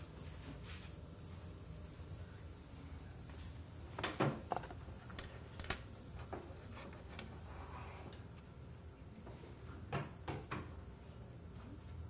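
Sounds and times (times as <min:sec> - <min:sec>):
low room hum: 0:00.0 - 0:12.0.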